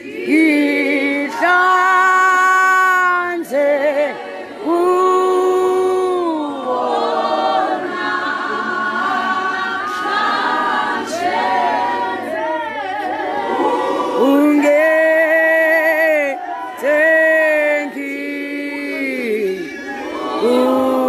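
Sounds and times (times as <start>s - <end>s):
group of voices singing: 0.0s - 21.0s.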